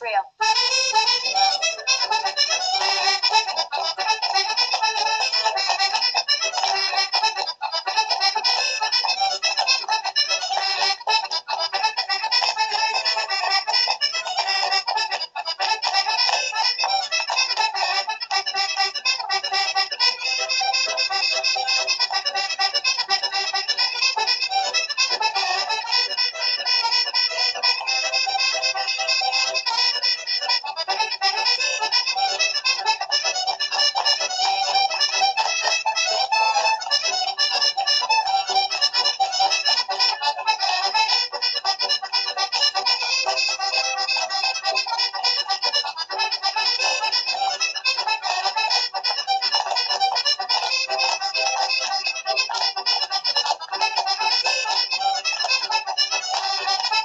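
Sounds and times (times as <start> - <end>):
accordion playing a fast reel: 0.0 - 57.0.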